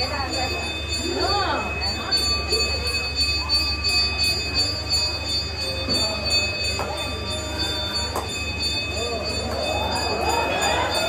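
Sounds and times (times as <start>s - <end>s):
murmured voices: 0.0s - 11.0s
temple bell ringing: 0.0s - 11.0s.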